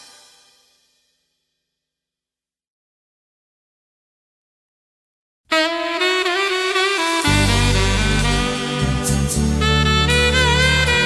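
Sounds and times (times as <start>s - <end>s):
band music final chord: 6.3s - 11.0s.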